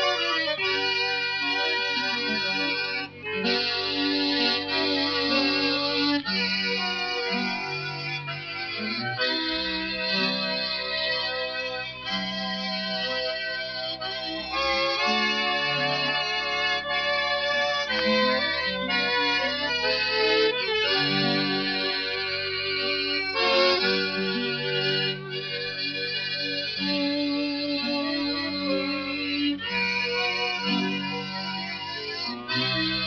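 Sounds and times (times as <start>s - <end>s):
instrumental band music: 0.0s - 33.0s.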